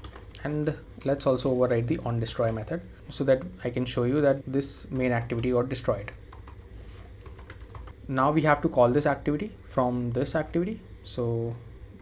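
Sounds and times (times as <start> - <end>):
computer keyboard typing: 0.0 - 0.4, 2.1 - 2.7, 6.3 - 8.0.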